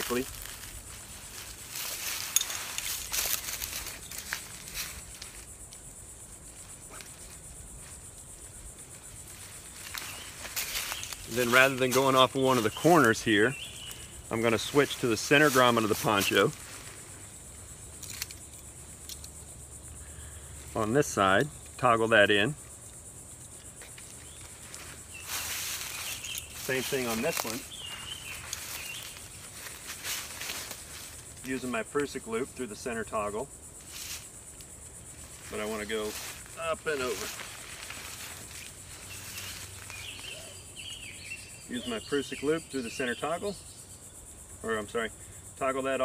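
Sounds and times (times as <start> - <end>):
high-pitched insect chirring: 0.0 - 46.0.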